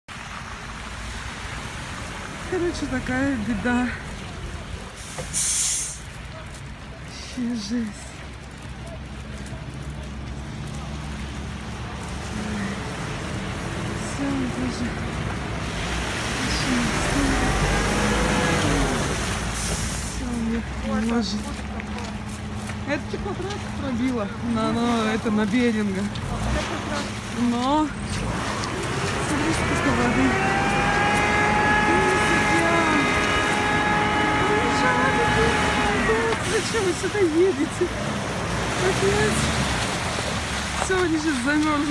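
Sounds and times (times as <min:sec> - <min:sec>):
bus wheels splashing through water: 0:00.1 - 0:41.9.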